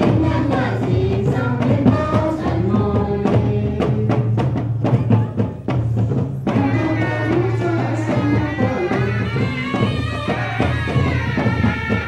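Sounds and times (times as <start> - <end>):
drum strokes: 0.0 - 12.0
wind instrument melody: 6.5 - 12.0.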